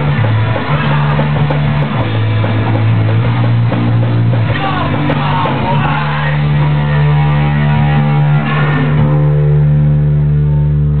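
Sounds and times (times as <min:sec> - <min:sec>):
rock band guitar and bass: 0:00.0 - 0:11.0.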